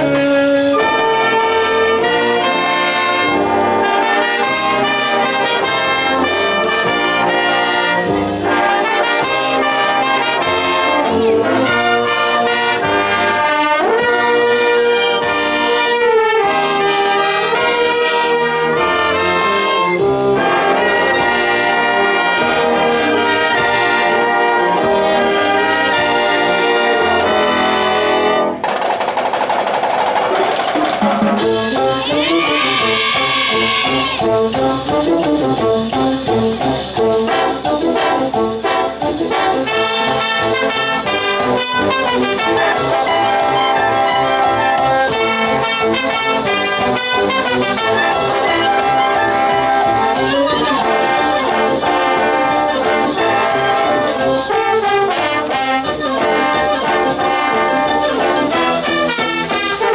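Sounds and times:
wind band playing: 0:00.0 - 0:28.7, 0:30.1 - 0:59.9.

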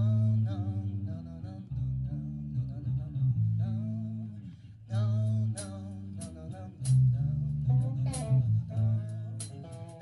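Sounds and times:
bass guitar line: 0:00.0 - 0:10.0
guitar: 0:00.0 - 0:10.0.

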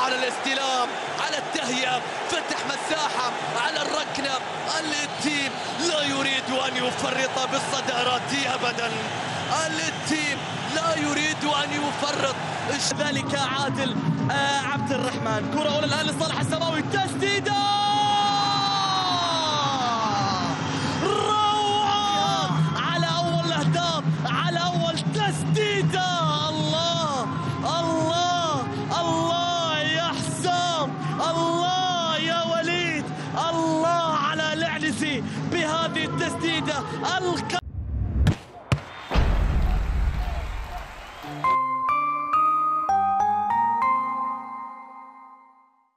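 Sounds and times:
short whoosh: 0:37.6 - 0:38.4
deep boom: 0:37.6 - 0:40.9.

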